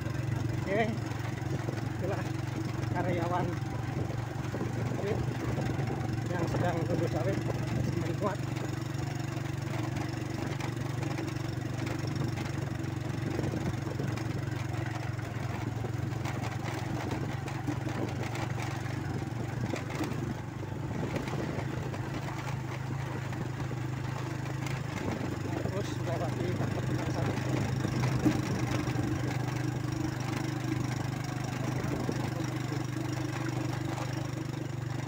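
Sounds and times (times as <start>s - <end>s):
motorcycle engine running: 0.0s - 35.0s
rattles and knocks: 0.4s - 34.7s.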